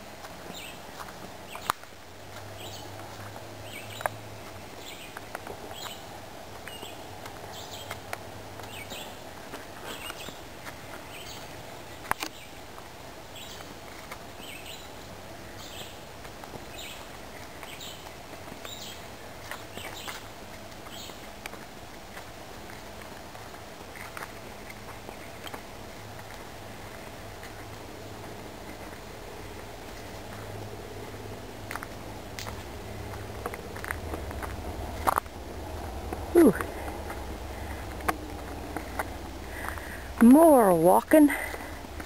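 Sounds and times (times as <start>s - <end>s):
birds chirping: 0.0s - 42.0s
footsteps on dirt trail: 0.0s - 42.0s
low rumble: 26.6s - 40.3s.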